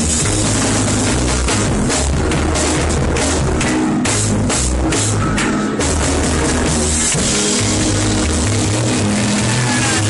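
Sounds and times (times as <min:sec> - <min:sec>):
deep bass line: 0:00.0 - 0:10.0
reggae band playing: 0:00.0 - 0:10.0.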